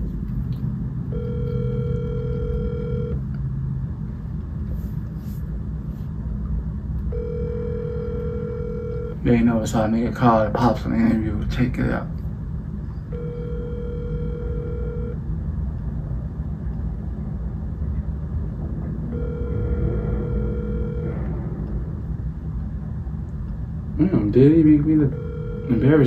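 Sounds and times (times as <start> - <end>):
low room hum: 0.0 - 26.0
phone ringback tone: 1.1 - 3.2, 7.1 - 9.2, 13.1 - 15.2, 19.1 - 21.3, 25.1 - 26.0.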